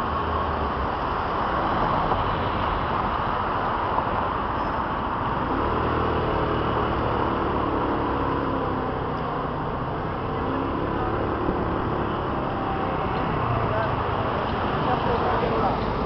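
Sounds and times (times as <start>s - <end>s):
city street traffic: 0.0s - 16.0s
vehicle engine hum: 0.0s - 16.0s.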